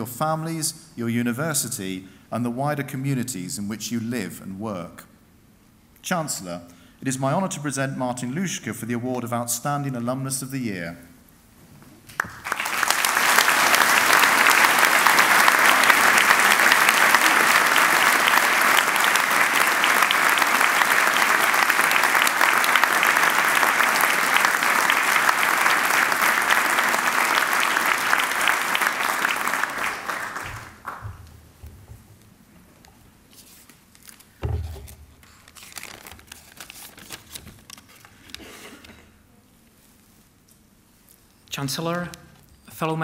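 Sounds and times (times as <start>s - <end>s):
audience applauding: 12.1s - 31.3s.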